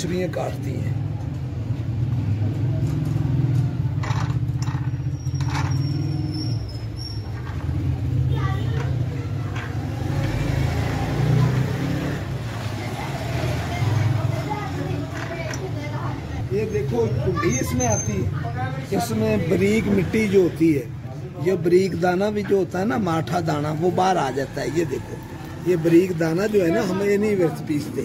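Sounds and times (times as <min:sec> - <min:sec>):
people talking: 0:12.6 - 0:20.8.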